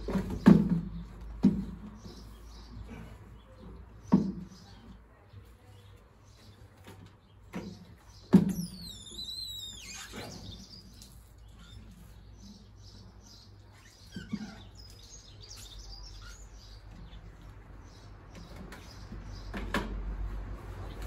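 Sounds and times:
squeegee squeaking on wet glass: 8.5 - 12.2, 13.7 - 14.9.

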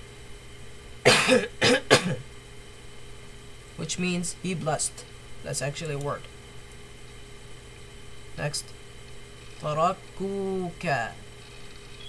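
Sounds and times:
person coughing: 1.0 - 2.3.

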